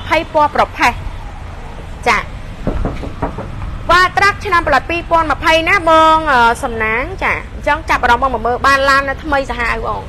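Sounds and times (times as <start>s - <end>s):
woman speaking: 0.0s - 1.0s, 2.0s - 2.3s, 3.9s - 10.0s
low rumble of street traffic: 0.0s - 10.0s.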